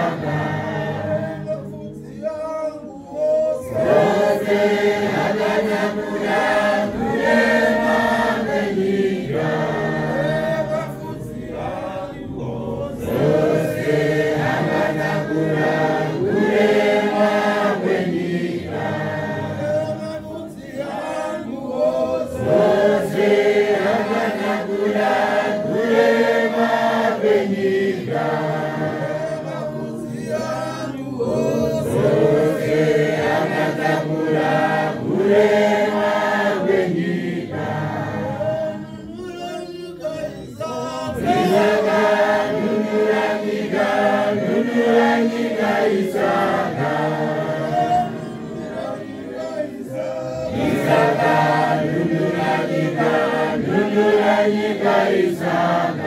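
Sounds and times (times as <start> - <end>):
congregation singing a hymn: 0.0 - 56.0.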